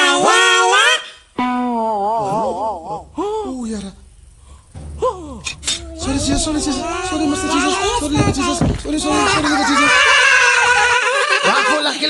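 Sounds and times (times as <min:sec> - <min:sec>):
high-pitched voices wailing: 0:00.0 - 0:04.0, 0:05.0 - 0:12.0
man speaking: 0:05.5 - 0:10.1.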